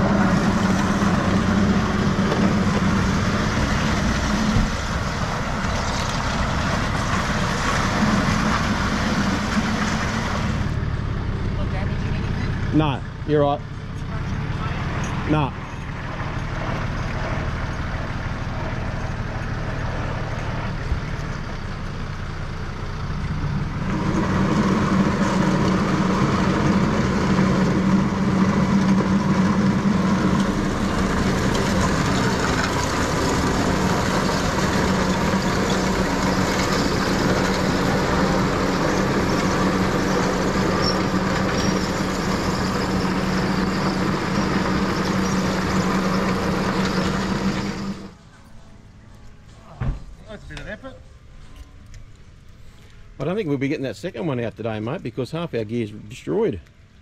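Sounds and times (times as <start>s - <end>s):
truck engine running: 0.0s - 57.0s.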